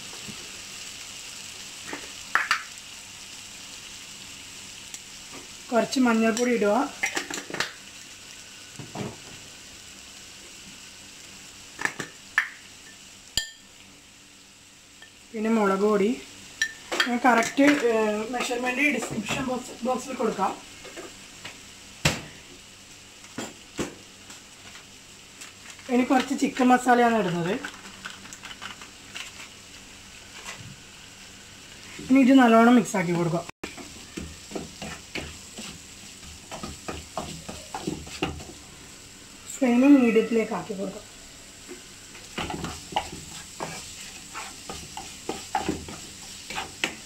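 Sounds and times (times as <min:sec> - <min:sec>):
masala sizzling in a frying pan: 0:00.0 - 0:47.0.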